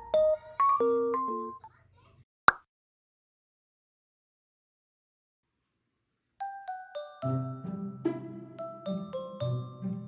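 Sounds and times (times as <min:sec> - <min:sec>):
soft background music: 0:06.4 - 0:10.0.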